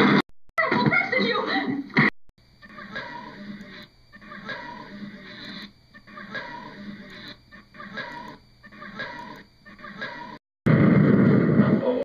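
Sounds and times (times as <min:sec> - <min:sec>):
loud noisy burst: 0:10.7 - 0:12.0.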